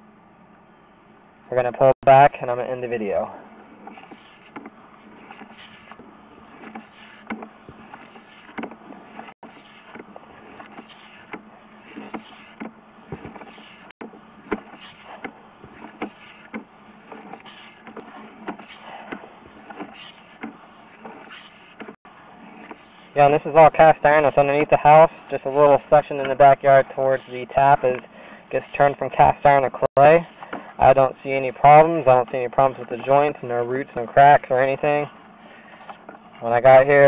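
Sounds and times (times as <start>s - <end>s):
cable scraping and clicking: 3.7s - 37.0s.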